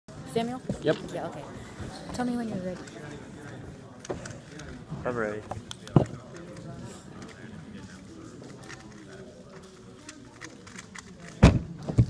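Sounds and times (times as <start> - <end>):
background chatter: 0.1 - 12.0.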